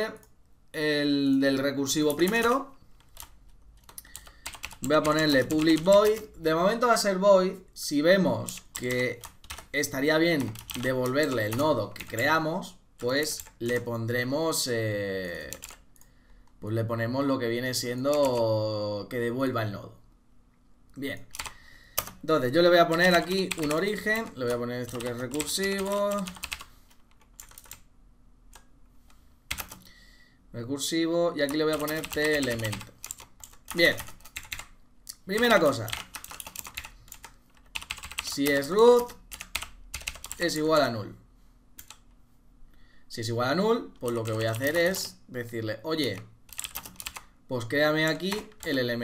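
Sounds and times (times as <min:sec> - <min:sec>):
computer keyboard keystrokes: 0:03.0 - 0:06.2, 0:08.5 - 0:09.7, 0:10.4 - 0:12.3, 0:15.5 - 0:15.8, 0:21.3 - 0:22.2, 0:22.9 - 0:27.8, 0:29.5 - 0:29.9, 0:31.4 - 0:34.7, 0:35.4 - 0:40.6, 0:41.8 - 0:42.0, 0:46.0 - 0:47.3.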